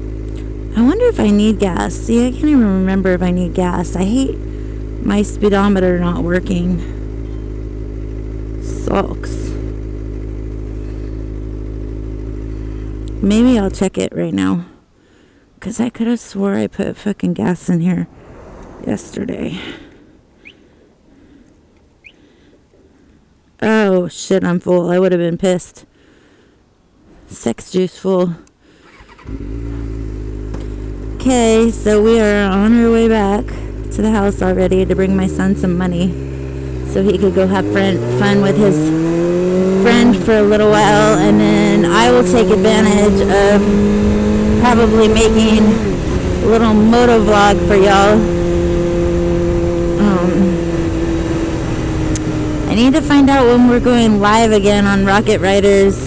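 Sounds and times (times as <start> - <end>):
motorcycle engine cruising: 0.0 - 14.8, 17.4 - 23.9, 28.4 - 56.0
wind and road rumble: 0.0 - 25.6, 26.6 - 56.0
faint low rumble: 15.7 - 23.6
bird chirping: 20.3 - 20.7, 21.8 - 22.3.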